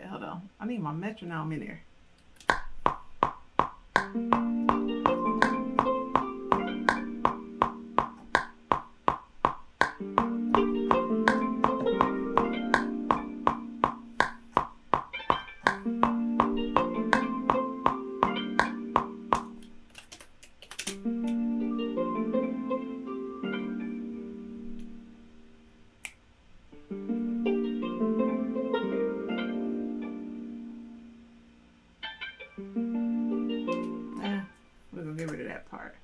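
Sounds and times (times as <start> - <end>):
plucked guitar melody: 4.0 - 19.7, 21.0 - 25.0, 26.8 - 30.8, 32.0 - 34.5.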